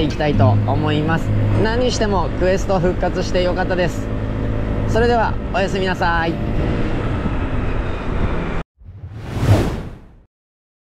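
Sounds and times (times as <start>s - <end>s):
motorbike engine and road noise: 0.0s - 8.6s
whoosh sound effect: 8.8s - 10.3s.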